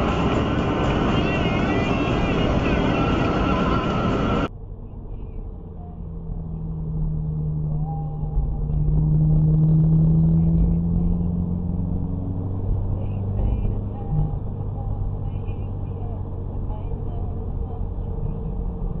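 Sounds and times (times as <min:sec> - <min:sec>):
car engine and road noise: 0:00.0 - 0:19.0
low drone: 0:00.0 - 0:19.0.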